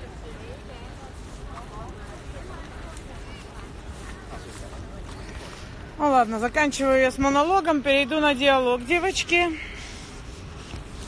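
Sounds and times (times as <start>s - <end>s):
faint distant voices: 0.0s - 11.0s
low street rumble and hiss: 0.0s - 11.0s.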